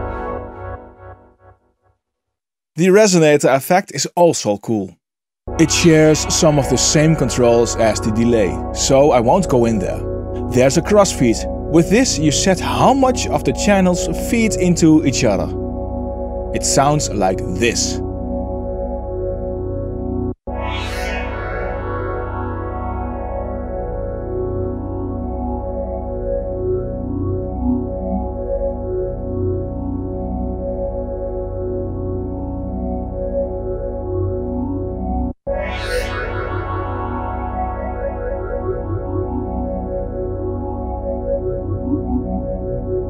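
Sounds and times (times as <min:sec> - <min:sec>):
shimmering synthesizer chord: 0:05.5 - 0:43.0.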